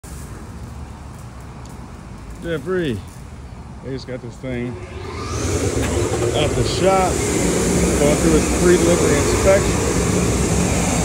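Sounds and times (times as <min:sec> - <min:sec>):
motor vehicle rumble: 0:00.0 - 0:11.0.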